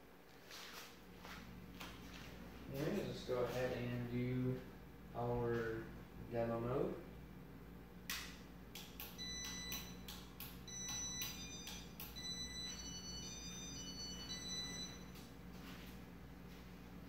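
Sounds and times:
ceiling fan clicking: 8.0 - 12.9
faint high whining tones: 9.0 - 15.9.

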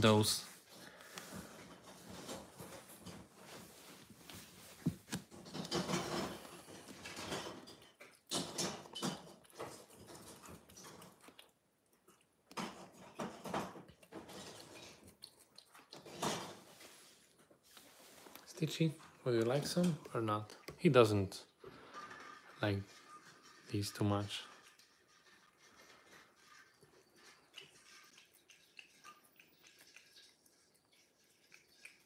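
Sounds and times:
cat licking wetly: 13.8 - 18.6, 24.6 - 32.0.

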